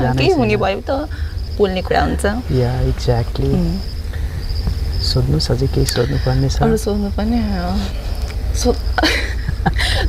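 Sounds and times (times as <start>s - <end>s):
person speaking: 0.0s - 0.9s, 1.8s - 3.9s, 5.0s - 8.2s
insects trilling: 0.0s - 10.0s
low steady hum: 0.0s - 10.0s
thin high steady tone: 0.0s - 10.0s.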